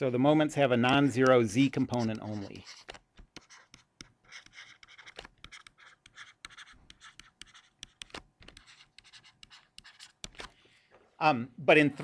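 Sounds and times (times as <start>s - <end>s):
stylus scratching on tablet screen: 0.9s - 10.5s.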